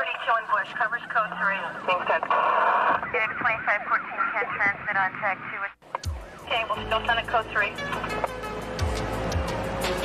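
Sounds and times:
voice over two-way radio: 0.0s - 5.8s
radio static hiss: 0.0s - 5.9s.

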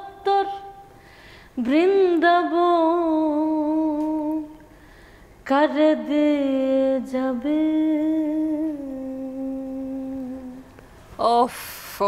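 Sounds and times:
woman singing unaccompanied: 0.0s - 1.0s, 1.6s - 4.7s, 5.4s - 11.5s.

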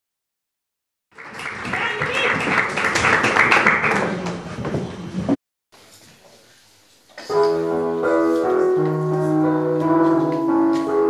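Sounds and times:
audience applauding: 1.1s - 4.5s.

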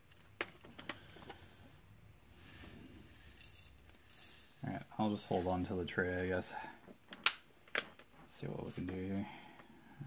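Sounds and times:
soft rustle: 2.3s - 6.0s, 8.2s - 9.2s.

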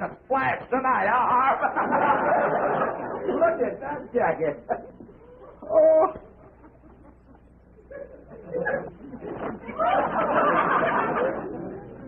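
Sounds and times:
low hum and hiss: 0.0s - 12.0s
high-pitched vocal exclamation: 5.4s - 6.2s.

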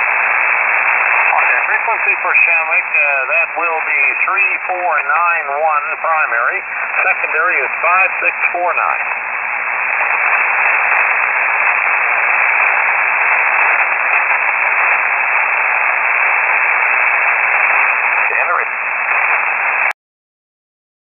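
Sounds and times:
radio static hiss: 0.0s - 20.0s
faint voice on radio: 1.2s - 9.2s, 15.8s - 19.9s.

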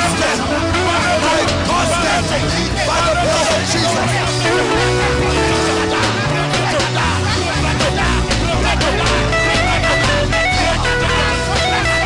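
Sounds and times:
congregation praying aloud: 0.0s - 12.0s
worship music: 0.4s - 11.8s.

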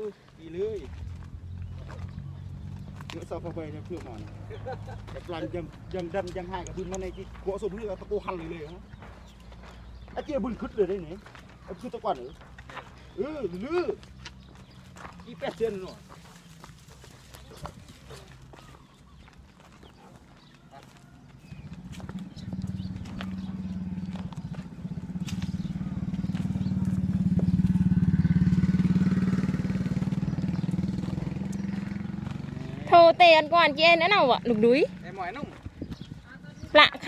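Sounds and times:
small motorcycle engine approaching: 0.4s - 37.0s.

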